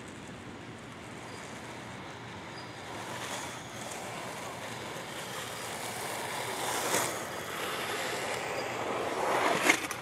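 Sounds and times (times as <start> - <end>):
skate wheels rolling on asphalt: 0.0 - 10.0.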